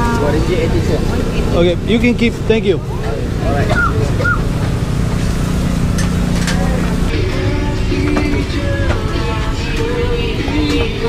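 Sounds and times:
distant voices: 0:00.0 - 0:11.0
music: 0:07.1 - 0:11.0.

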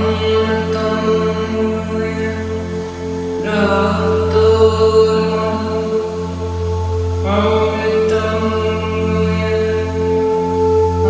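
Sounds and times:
woman chanting: 0:00.0 - 0:11.0.

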